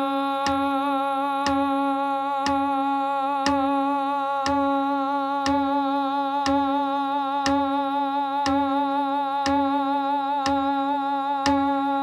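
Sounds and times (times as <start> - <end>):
person humming a held note: 0.0 - 12.0
beat track clicks and thumps: 8.4 - 8.7, 9.4 - 9.7.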